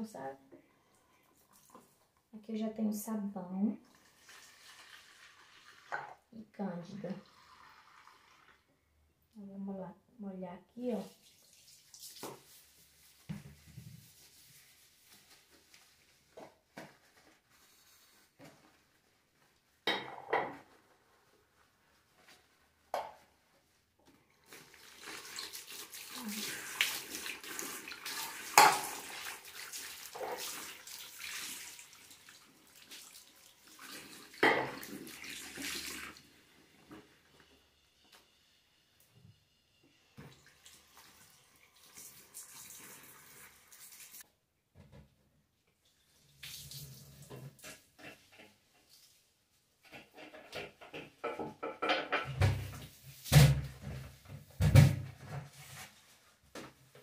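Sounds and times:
sponge scrubbing sink: 0:11.0 - 0:19.5, 0:24.4 - 0:37.2, 0:55.2 - 0:56.2
tap running into basin: 0:24.6 - 0:33.1.

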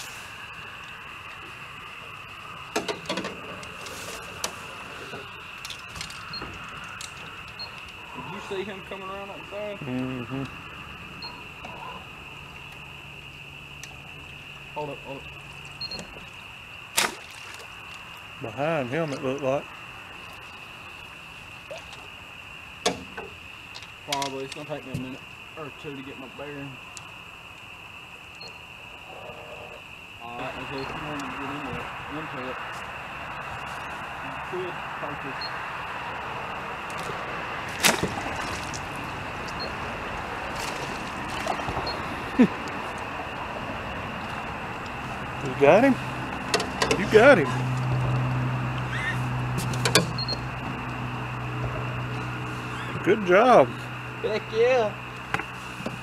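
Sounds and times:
steady hiss: 0:00.0 - 0:16.9.

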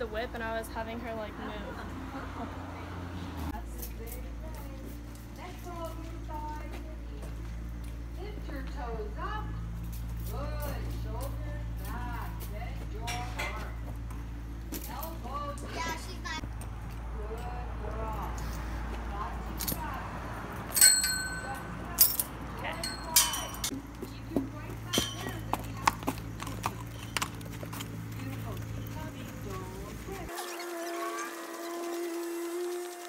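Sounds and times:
metal chains clinking: 0:20.6 - 0:23.7.

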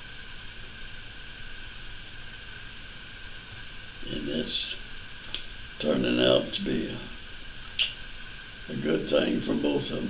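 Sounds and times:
faint high whine: 0:00.0 - 0:10.0
recording hiss: 0:00.0 - 0:10.0.

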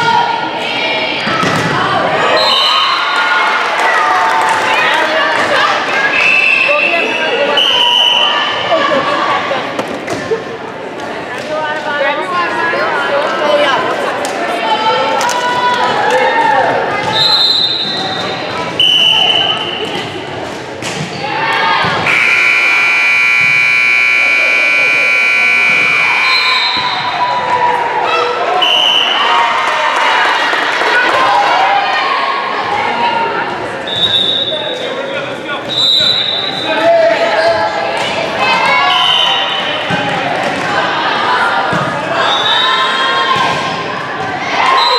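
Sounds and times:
players' voices echoing: 0:00.0 - 0:44.9
scoreboard buzzer: 0:22.1 - 0:26.4.

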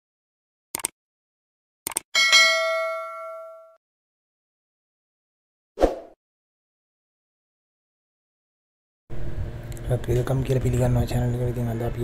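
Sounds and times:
small bell dinging: 0:02.2 - 0:03.8.

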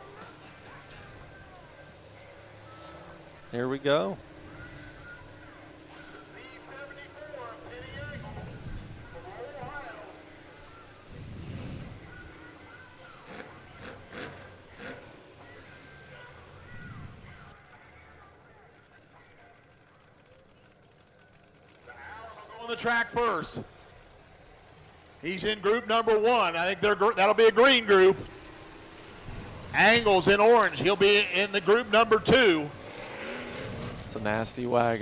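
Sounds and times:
car engines rumbling: 0:00.0 - 0:35.0
faint indistinct voices: 0:00.0 - 0:35.0.

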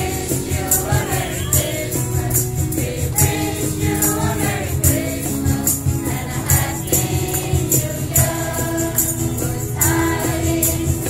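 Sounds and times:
group singing a carol: 0:00.0 - 0:11.0
jingling percussion: 0:00.0 - 0:11.0
musical accompaniment: 0:00.0 - 0:11.0.

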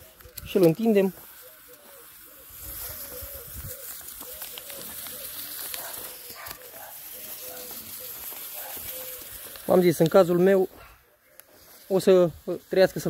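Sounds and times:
steady high hiss: 0:00.0 - 0:10.7.

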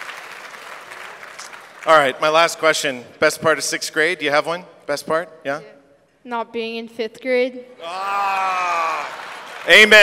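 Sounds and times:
audience applause: 0:00.0 - 0:02.1, 0:08.3 - 0:10.0
man speaking: 0:01.9 - 0:05.8.

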